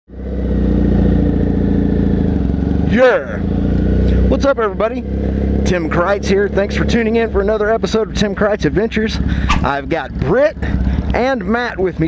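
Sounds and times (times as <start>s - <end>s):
motorcycle engine idling: 0.2s - 12.0s.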